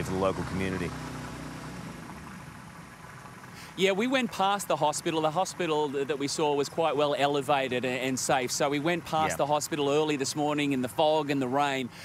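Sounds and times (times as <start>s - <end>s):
outboard motor idling: 0.0s - 12.0s.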